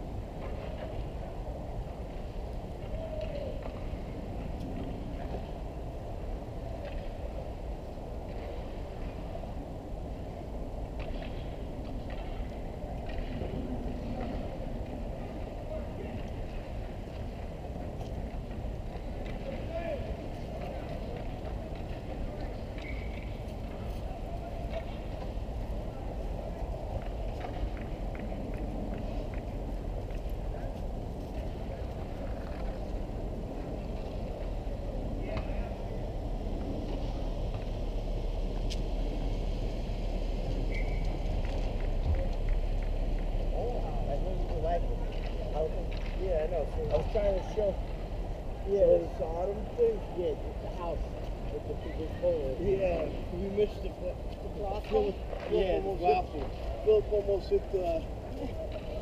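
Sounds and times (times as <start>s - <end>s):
distant voices: 0.0s - 59.0s
wind rumble on microphone: 0.0s - 59.0s.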